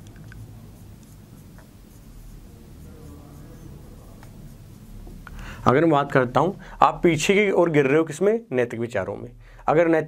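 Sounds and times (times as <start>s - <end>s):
marker pen writing on whiteboard: 0.0s - 5.7s.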